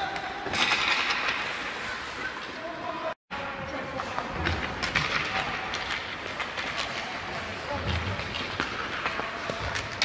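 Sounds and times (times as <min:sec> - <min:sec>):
hockey sticks and pucks clacking: 0:00.0 - 0:02.9, 0:03.6 - 0:10.0.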